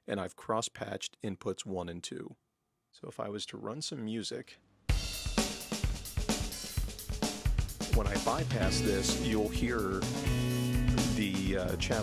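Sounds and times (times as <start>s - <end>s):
recorded song with drum kit: 4.9s - 12.0s.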